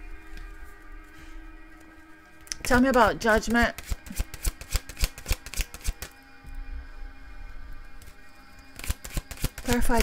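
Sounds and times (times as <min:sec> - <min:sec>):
soft background music: 0:00.0 - 0:10.0
paper cards clicking and tapping: 0:03.6 - 0:06.2, 0:08.8 - 0:10.0.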